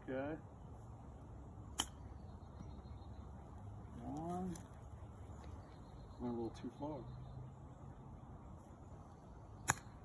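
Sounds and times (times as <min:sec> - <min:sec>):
golf club striking ball: 0:01.7 - 0:02.0.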